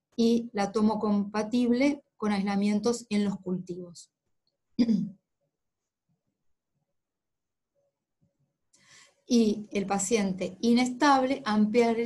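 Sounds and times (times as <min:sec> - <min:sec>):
person clearing throat: 0:04.8 - 0:05.2.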